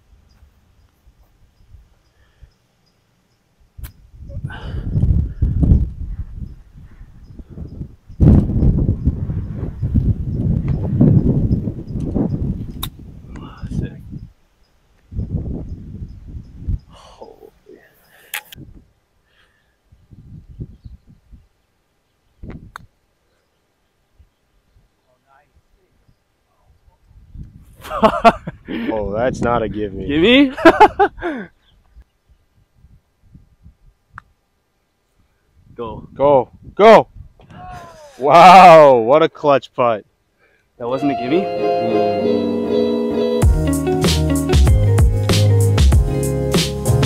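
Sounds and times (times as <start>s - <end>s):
wind buffeting microphone: 3.6s - 14.4s, 15.0s - 17.2s, 18.6s - 19.0s, 19.9s - 21.5s, 22.4s - 22.9s, 27.0s - 31.2s, 32.3s - 34.3s, 35.5s - 38.1s.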